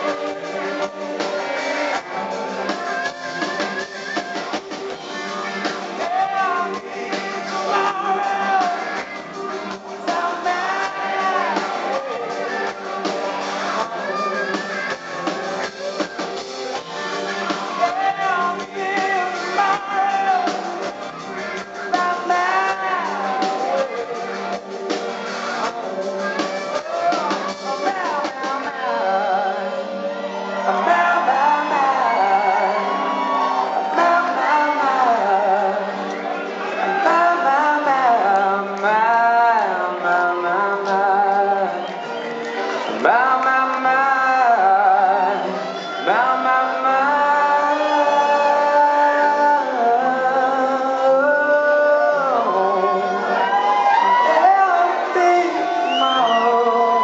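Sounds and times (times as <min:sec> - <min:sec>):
strummed guitar: 0:00.0 - 0:57.0.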